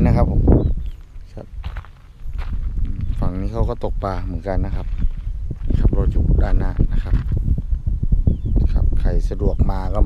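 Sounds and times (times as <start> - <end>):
low rumble: 0.0 - 10.0
footsteps on gravel: 0.8 - 7.5.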